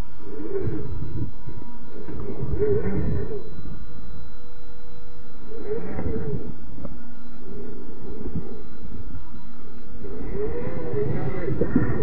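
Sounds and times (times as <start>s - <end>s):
slowed electric motor whine: 0.0s - 12.0s.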